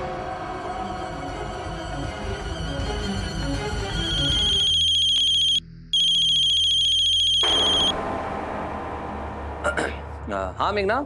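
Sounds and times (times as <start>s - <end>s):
mobile phone ringtone trilling: 4.0s - 7.9s.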